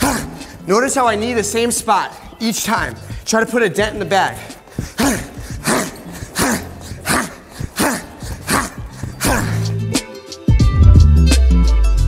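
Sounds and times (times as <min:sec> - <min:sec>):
sharp exhaled grunts: 0:00.0 - 0:00.7, 0:04.4 - 0:10.0
background music: 0:00.0 - 0:12.0.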